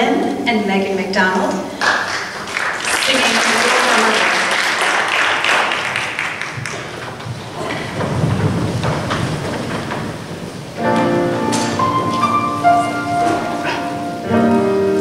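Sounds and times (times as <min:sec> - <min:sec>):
audience applauding: 0:01.8 - 0:14.2
choir sitting on wooden risers: 0:01.9 - 0:15.0.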